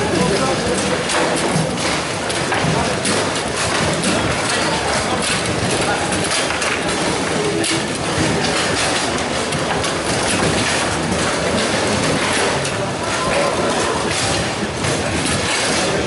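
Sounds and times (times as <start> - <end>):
table football clatter: 0.0 - 16.0.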